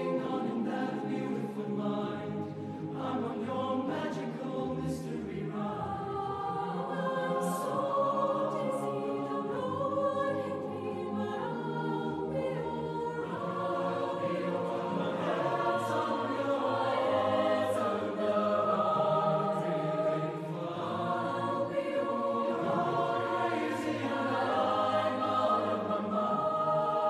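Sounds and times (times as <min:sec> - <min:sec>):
mixed choir singing in parts: 0:00.0 - 0:27.0.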